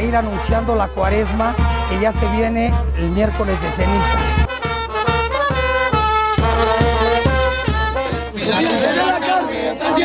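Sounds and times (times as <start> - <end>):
steady low drum beat: 0.0 - 8.8
brass band playing dance music: 0.0 - 10.0.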